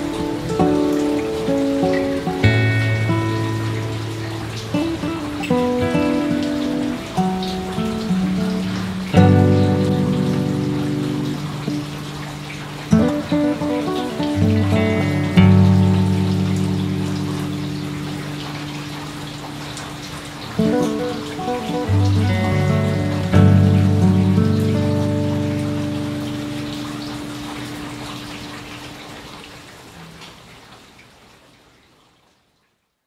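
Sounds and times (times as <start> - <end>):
slow plucked-string music: 0.0 - 19.4, 20.5 - 28.4
steady rain-like hiss: 0.0 - 33.0.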